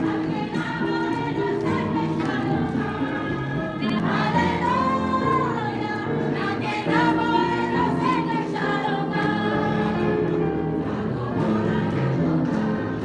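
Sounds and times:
women singing a hymn: 0.0s - 13.0s.

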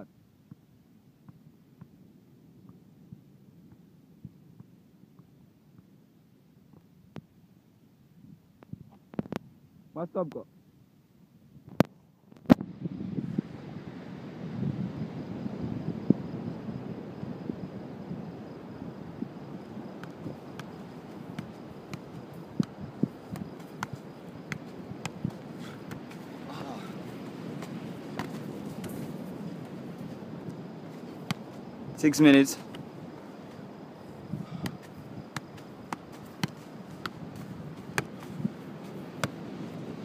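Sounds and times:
low rumble of outdoor noise: 0.0s - 40.0s
soft kicks on a football: 20.0s - 29.8s, 30.8s - 31.7s, 34.4s - 39.5s.

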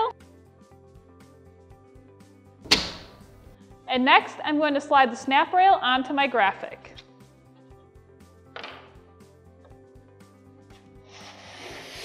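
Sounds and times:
metal rail snapping open: 2.7s - 3.5s.

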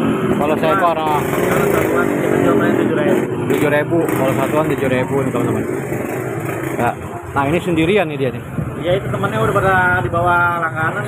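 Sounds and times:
steady background noise: 0.0s - 11.0s
people talking: 0.4s - 5.7s, 6.8s - 11.0s.

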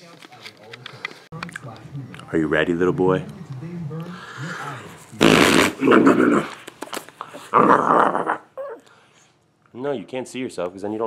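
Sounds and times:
man blowing raspberries on skin: 4.0s - 6.7s.

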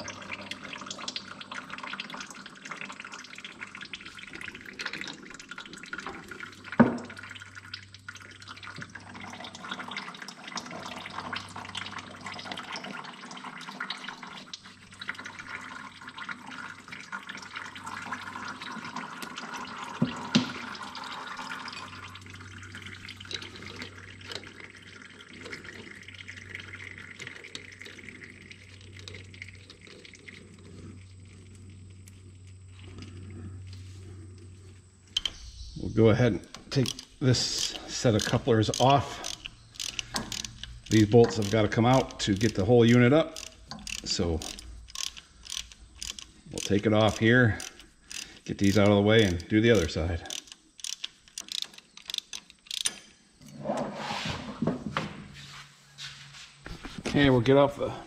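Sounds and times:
oil running out of a line: 0.0s - 54.6s.

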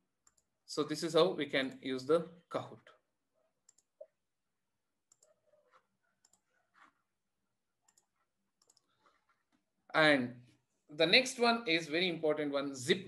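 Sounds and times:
computer mouse clicks: 0.2s - 0.5s, 3.6s - 4.2s, 5.1s - 7.0s, 7.8s - 9.2s.

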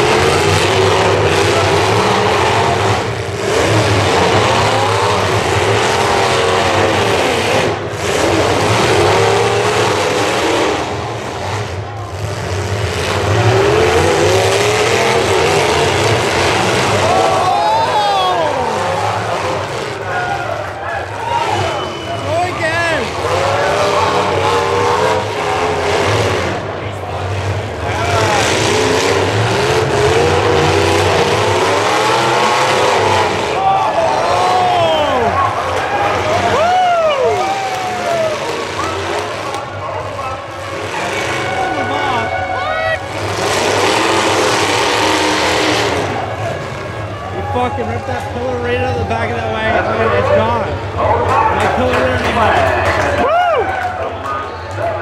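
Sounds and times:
car engines revving: 0.0s - 55.0s.

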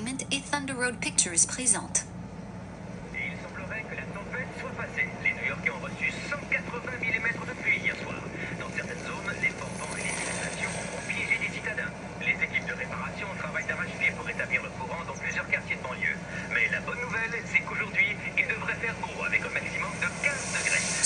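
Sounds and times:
muffled voices through speaker: 0.0s - 2.1s, 3.1s - 21.0s
steady low hum: 0.0s - 21.0s.

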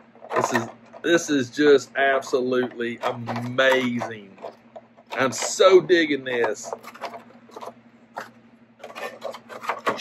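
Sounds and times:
scratchy handling noises: 0.0s - 10.0s.

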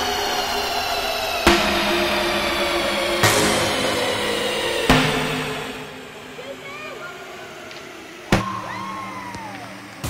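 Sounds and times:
steady low hum: 0.0s - 10.0s
sharp bang: 1.5s - 8.8s
spectator cheering: 6.4s - 10.0s.

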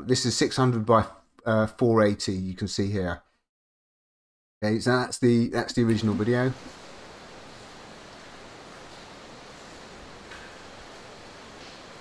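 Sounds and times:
faint hiss: 5.9s - 12.0s.

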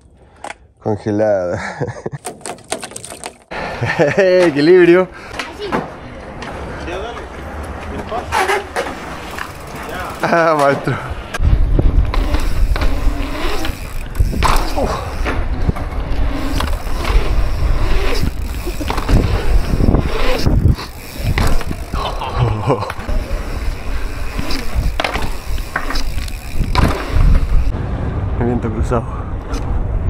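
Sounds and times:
knocks and clicks from bike: 2.2s - 3.5s, 18.0s - 22.0s, 24.3s - 27.7s
bike tyres rolling on concrete: 2.2s - 27.8s
wind rumble on microphone: 11.4s - 30.0s.

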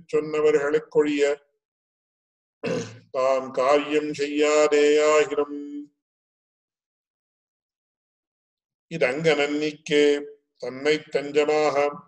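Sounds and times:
man chanting: 3.2s - 5.8s.

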